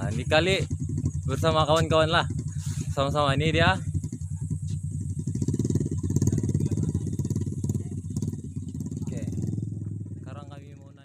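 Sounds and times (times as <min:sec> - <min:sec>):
motorcycle engine running: 0:00.0 - 0:11.0.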